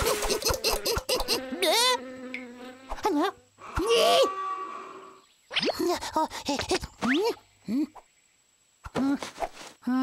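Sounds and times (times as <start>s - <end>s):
cartoon fly buzzing: 0.0s - 6.0s.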